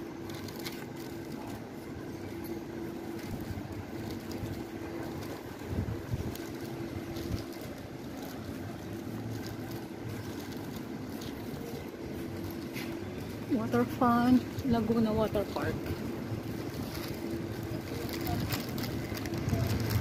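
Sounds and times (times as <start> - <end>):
steady hum: 0.0 - 20.0
wind buffeting microphone: 3.3 - 7.8, 14.4 - 20.0.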